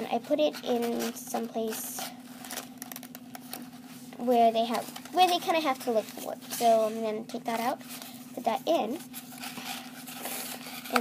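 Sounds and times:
paper and cardboard tube rustling: 0:03.4 - 0:11.0.

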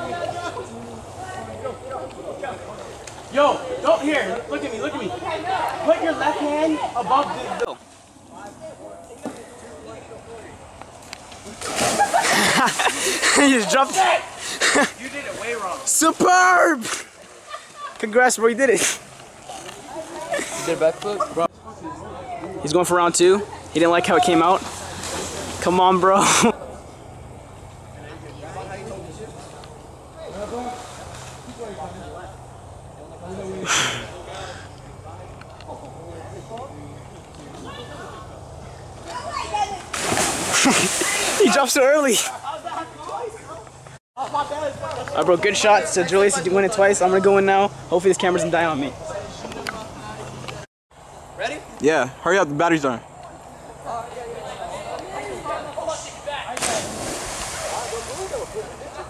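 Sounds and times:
distant talking: 0:00.0 - 0:59.0
voices calling out: 0:00.0 - 0:59.0
churned water washing: 0:11.4 - 0:21.5, 0:39.7 - 0:42.4, 0:56.6 - 0:59.0
body splashing into water: 0:11.5 - 0:13.0, 0:39.9 - 0:41.6, 0:56.6 - 0:58.3.

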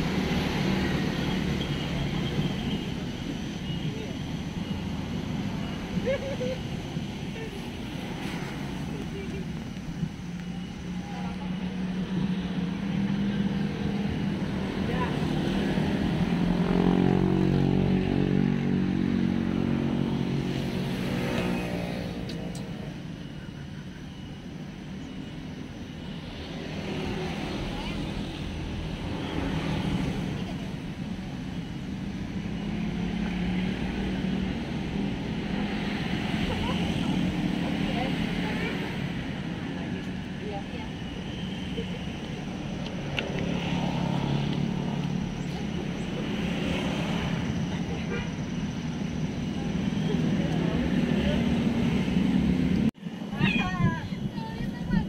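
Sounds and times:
background traffic hum: 0:00.0 - 0:55.0.

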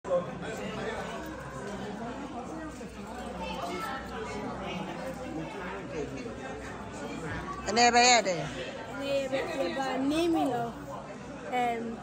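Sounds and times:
background chatter: 0:00.1 - 0:12.0.

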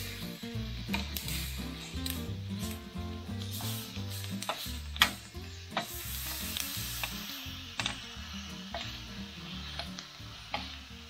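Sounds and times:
background music with bass line: 0:00.0 - 0:11.0
peppers sizzling on grill pan: 0:00.0 - 0:11.0
metal tongs clicking on pan: 0:04.2 - 0:05.9, 0:07.8 - 0:08.0.

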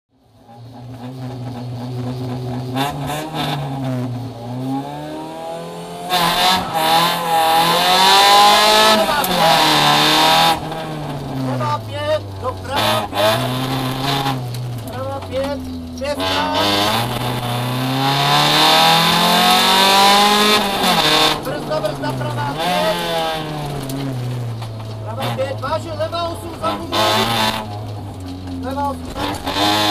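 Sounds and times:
car engine revving and accelerating: 0:00.2 - 0:29.9.

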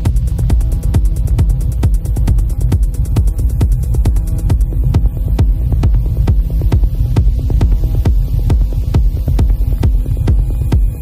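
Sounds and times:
deep droning bass: 0:00.0 - 0:11.0
techno kick drum: 0:00.0 - 0:11.0.

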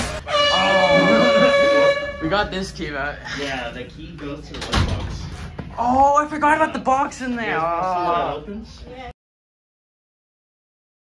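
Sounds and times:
loud horn-like blast: 0:00.0 - 0:02.6.

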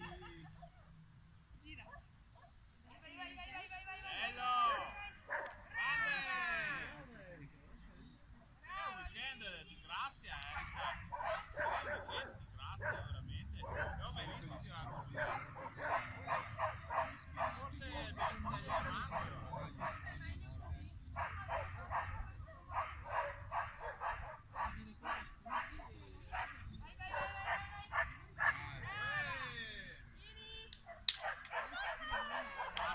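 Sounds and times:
dog barking and yipping: 0:04.7 - 0:05.6, 0:10.5 - 0:28.6, 0:30.8 - 0:32.9.

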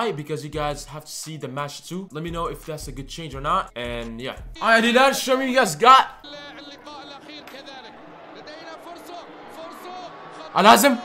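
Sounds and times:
faint tv commentary: 0:04.1 - 0:11.0
people's voices reacting: 0:04.6 - 0:11.0.

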